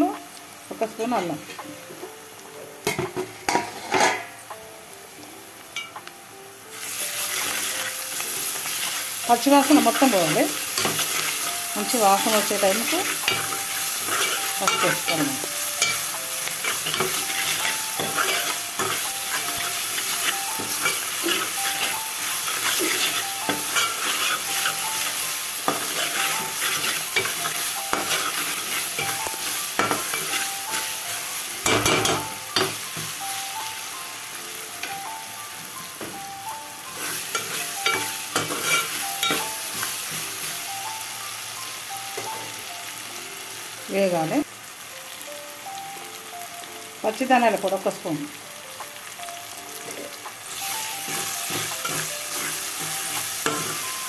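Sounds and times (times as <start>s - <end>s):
onions sizzling in oil: 0.0s - 54.0s.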